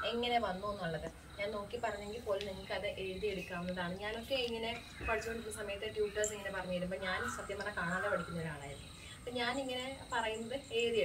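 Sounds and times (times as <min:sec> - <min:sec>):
insects droning: 0:00.0 - 0:11.0
woman speaking: 0:00.0 - 0:11.0.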